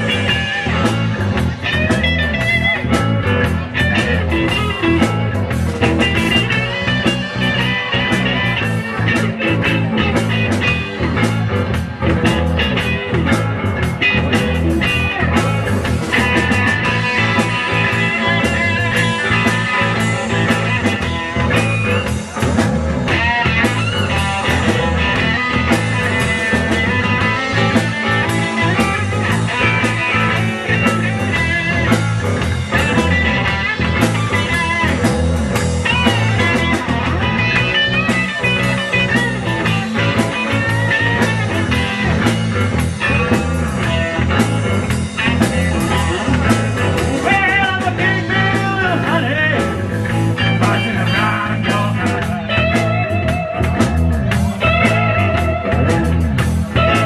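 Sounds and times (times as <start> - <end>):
drum kit beat: 0.0 - 57.0
electric guitar lead lines: 0.0 - 57.0.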